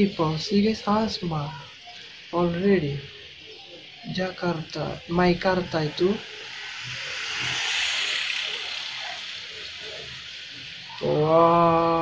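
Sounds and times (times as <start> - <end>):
rushing hiss: 0.0 - 12.0.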